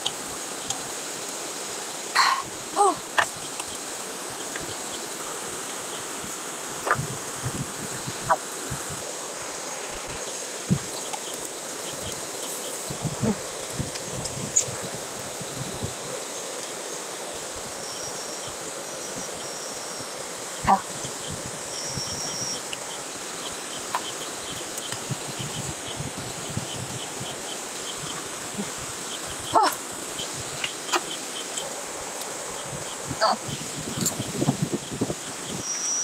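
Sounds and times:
night insects chirping: 0.0s - 36.0s
steady hiss: 0.0s - 36.0s.

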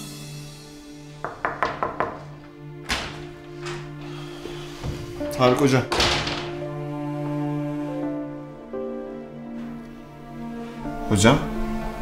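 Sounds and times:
dramatic background music: 0.0s - 12.0s
knocks on a wooden door: 1.2s - 2.3s.

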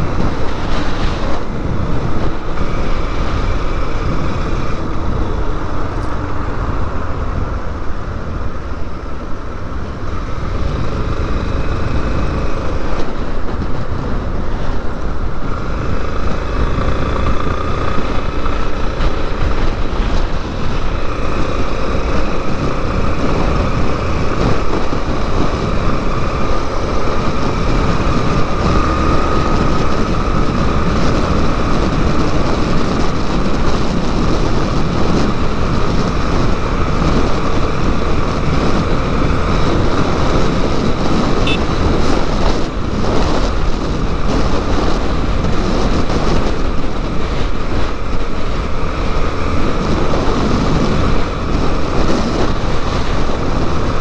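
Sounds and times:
motorcycle engine running: 0.0s - 54.0s
road noise: 0.0s - 54.0s
wind noise: 0.0s - 54.0s.

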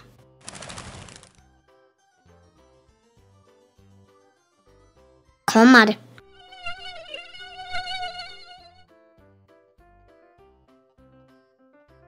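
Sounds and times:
mosquito whine: 6.2s - 9.0s.

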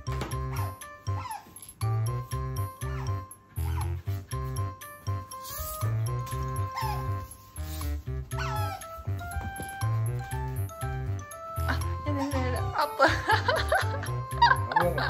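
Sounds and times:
otter squeaking: 0.0s - 13.0s
background music with steady beat: 0.0s - 15.0s.

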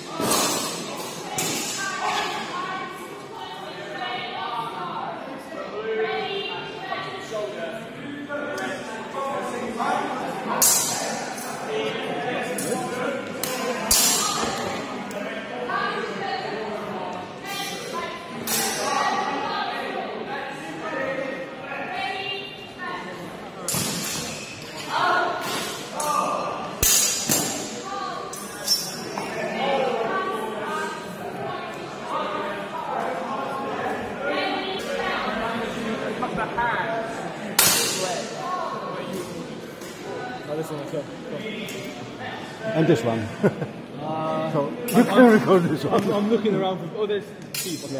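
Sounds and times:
echoing chatter of people: 0.0s - 47.9s
steel swords clashing: 26.8s - 27.7s.

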